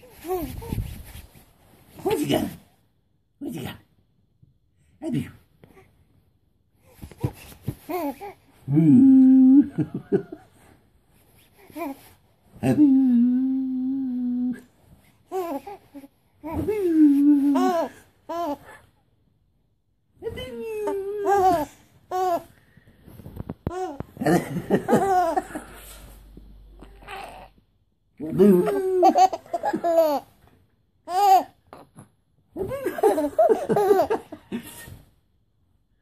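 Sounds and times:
person humming a note: 0:12.7 - 0:14.6
baby laughing: 0:17.4 - 0:18.7, 0:28.3 - 0:30.3, 0:32.6 - 0:34.9.

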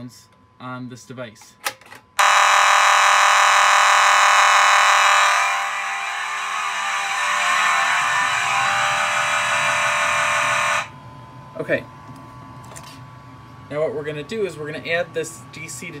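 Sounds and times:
buzzy fire alarm horn: 0:02.2 - 0:11.0.

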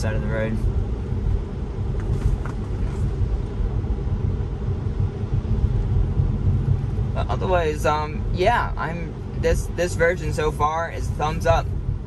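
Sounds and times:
tyres rumbling on wet road: 0:00.0 - 0:12.0.

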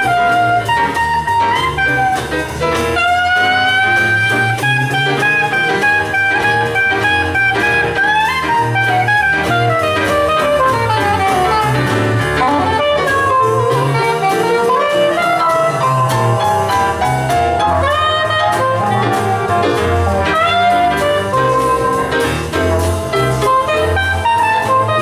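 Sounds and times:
double bass: 0:00.0 - 0:25.0
drum kit beat: 0:00.0 - 0:25.0
horn melody with slides: 0:00.0 - 0:25.0
jazz band playing: 0:00.0 - 0:25.0.

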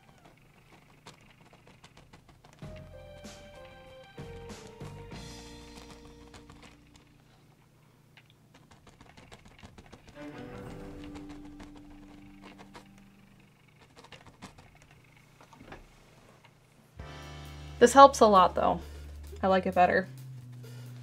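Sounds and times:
paintbrush dabbing on canvas: 0:00.0 - 0:07.4, 0:08.4 - 0:15.1
quiet background music: 0:02.6 - 0:07.3, 0:10.1 - 0:13.6, 0:17.0 - 0:21.0
music sting: 0:17.0 - 0:18.6.

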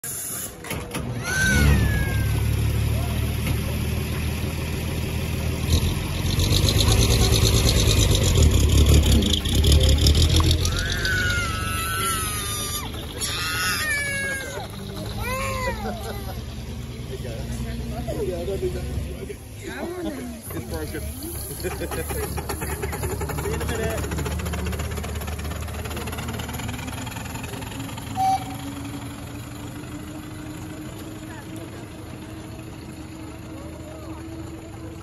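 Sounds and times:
steam hiss: 0:00.0 - 0:00.7, 0:21.0 - 0:23.1
small child crying: 0:01.2 - 0:02.6, 0:10.6 - 0:16.5
steam engine exhaust beats: 0:20.4 - 0:35.0.

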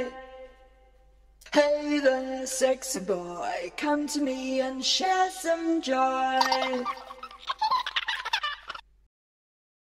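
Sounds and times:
pitched-up child giggling with echo: 0:06.4 - 0:08.8.

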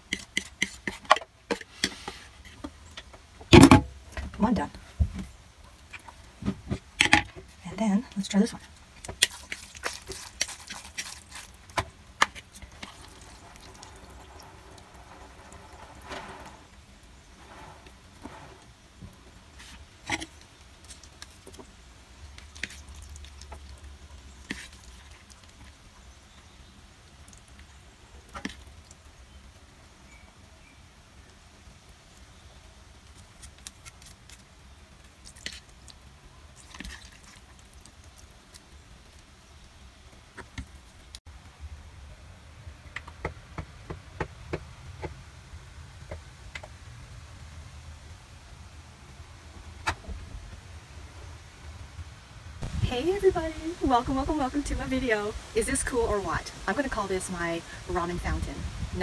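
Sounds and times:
wet squishes of noodles stirred: 0:08.6 - 0:16.9, 0:18.0 - 0:29.4, 0:32.2 - 0:41.2.

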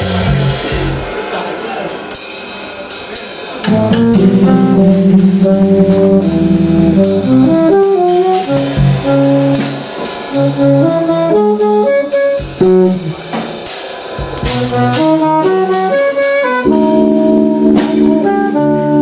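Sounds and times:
drum kit with cymbals: 0:00.0 - 0:19.0
electric keyboard: 0:03.6 - 0:13.2, 0:14.4 - 0:19.0
alto saxophone: 0:03.7 - 0:13.3, 0:14.4 - 0:19.0.

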